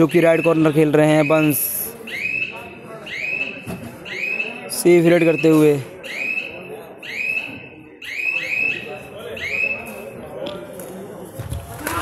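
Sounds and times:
voices and shouts in sports hall: 0:00.0 - 0:12.0.

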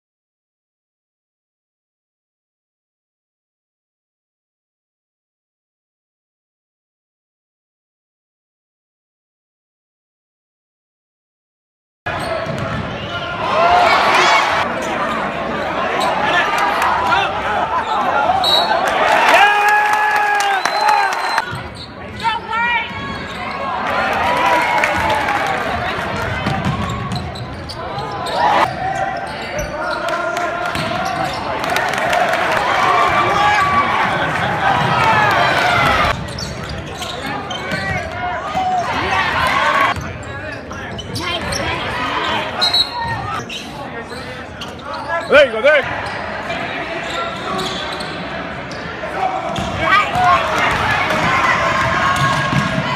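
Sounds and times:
spectators talking and calling out: 0:12.1 - 0:52.9.

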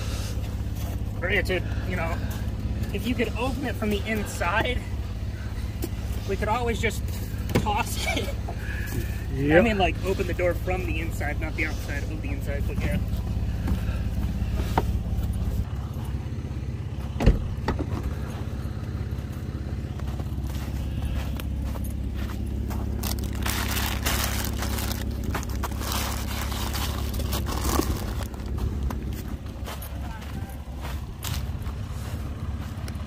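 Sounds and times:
vehicle engine idling: 0:00.0 - 0:33.0
footsteps crunching through snow: 0:19.0 - 0:33.0.

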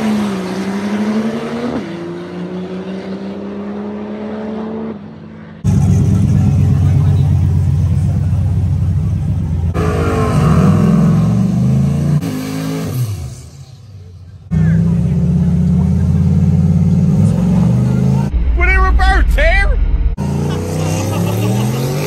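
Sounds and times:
diesel truck engines: 0:05.6 - 0:18.3, 0:19.8 - 0:22.0.

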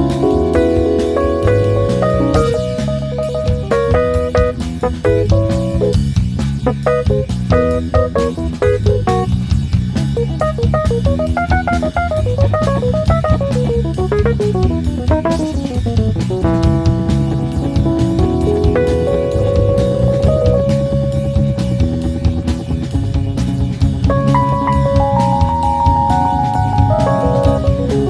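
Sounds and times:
drum kit: 0:00.0 - 0:28.0
electric bass: 0:00.0 - 0:28.0
electric guitar: 0:00.0 - 0:28.0
keyboard: 0:00.0 - 0:28.0.

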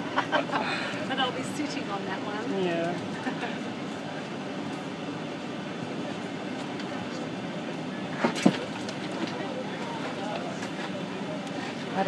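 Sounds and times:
cabin air-conditioning hum: 0:00.0 - 0:12.0
low chatter of passengers: 0:00.0 - 0:12.0.

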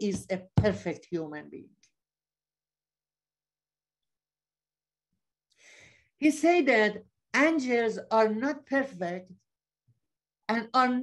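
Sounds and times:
woman's breath intake: 0:05.5 - 0:06.1.

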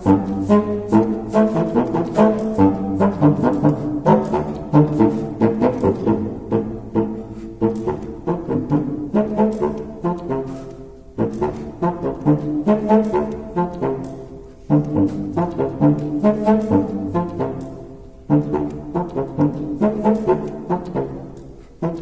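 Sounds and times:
contrabassoon playing dance tune: 0:00.0 - 0:22.0.

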